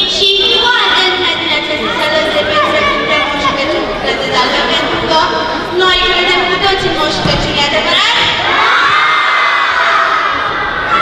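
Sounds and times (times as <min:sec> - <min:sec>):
children shouting and cheering: 0:07.9 - 0:11.0.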